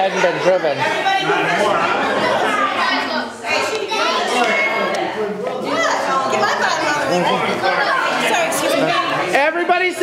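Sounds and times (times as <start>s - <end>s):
children and adults chattering: 0.0s - 10.0s.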